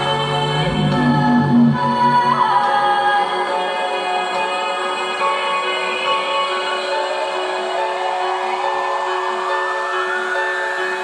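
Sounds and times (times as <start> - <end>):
music from portable speaker: 0.0 - 11.0.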